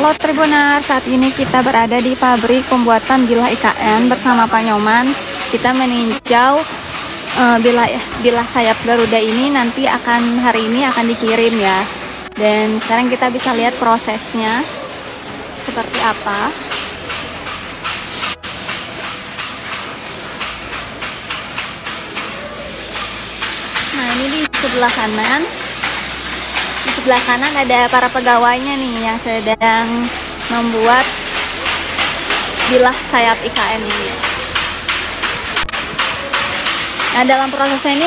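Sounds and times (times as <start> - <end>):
hammering on sheet metal: 0.0 - 14.8, 15.6 - 38.0.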